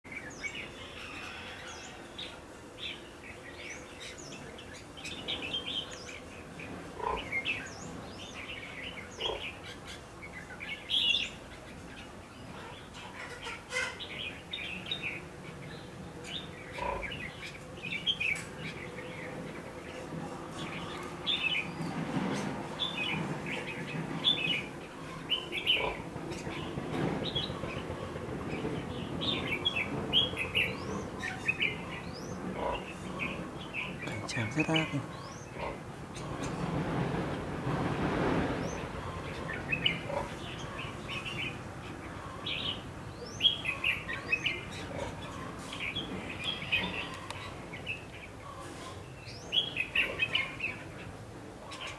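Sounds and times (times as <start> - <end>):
birds chirping: 0.0 - 51.9.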